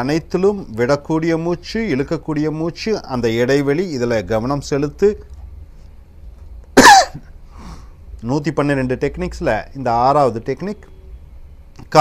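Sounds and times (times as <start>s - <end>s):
man coughing: 6.8s - 7.3s.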